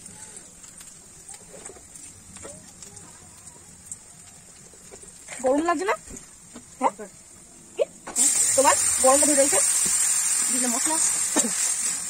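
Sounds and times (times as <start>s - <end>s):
liquid sizzling in hot oil: 0.0s - 12.0s.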